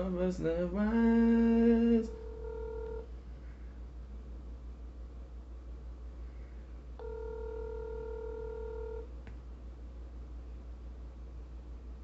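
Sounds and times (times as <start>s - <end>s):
telephone ringback tone: 2.2s - 3.1s, 7.0s - 9.1s.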